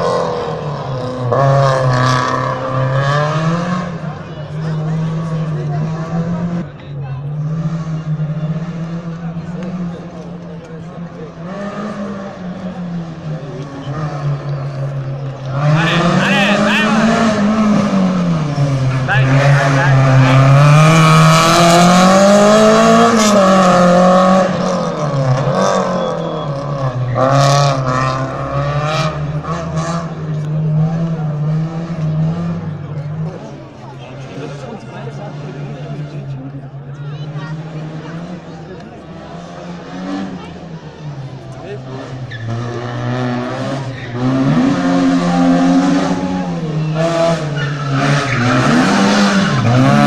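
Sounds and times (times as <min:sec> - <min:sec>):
rally car engine passing: 0:00.0 - 0:50.0.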